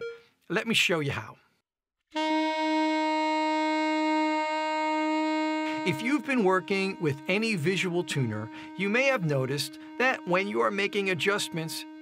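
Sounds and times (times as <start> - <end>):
saxophone long tone: 2.1 - 12.0.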